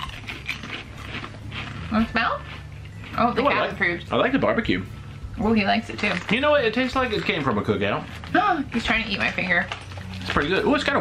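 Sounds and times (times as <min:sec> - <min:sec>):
potato chips crunching: 0:00.0 - 0:03.7, 0:05.9 - 0:11.0.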